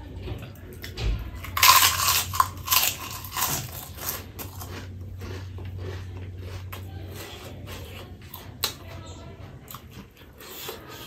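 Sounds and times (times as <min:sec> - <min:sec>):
cracker crunching: 0:00.8 - 0:08.8.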